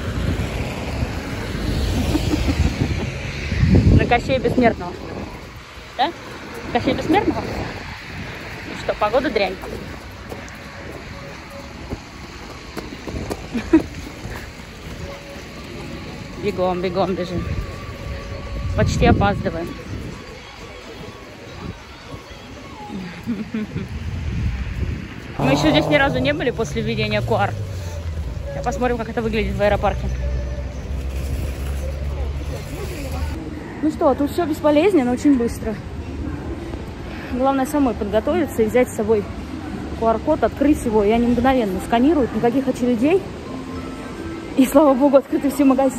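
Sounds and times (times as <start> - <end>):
wind on microphone: 0.0 - 15.2, 17.3 - 22.4, 23.0 - 28.7
distant traffic: 0.0 - 45.9
faint voices of passers-by: 0.0 - 45.9
short voice sound: 25.4 - 26.4.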